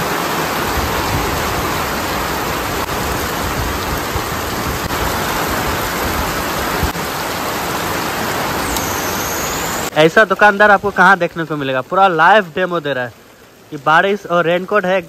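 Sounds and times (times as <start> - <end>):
heavy rain on a wet road: 0.0 - 15.0.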